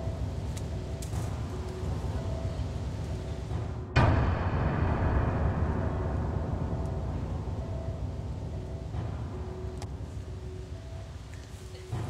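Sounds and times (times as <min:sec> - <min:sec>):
deep rumbling drone: 0:00.0 - 0:12.0.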